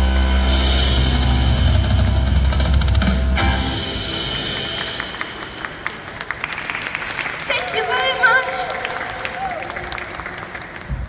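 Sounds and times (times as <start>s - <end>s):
music: 0.0s - 6.6s
audience clapping: 4.5s - 11.0s.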